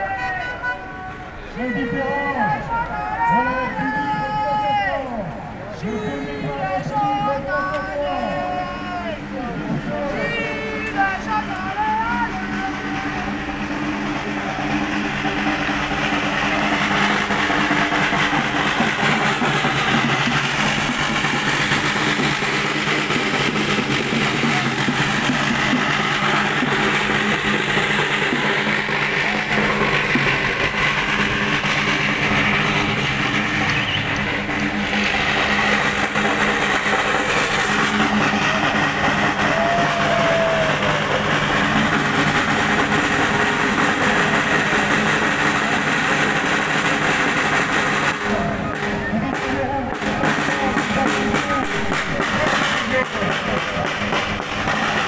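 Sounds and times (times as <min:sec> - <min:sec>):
city traffic engine drone: 0:00.0 - 0:55.0.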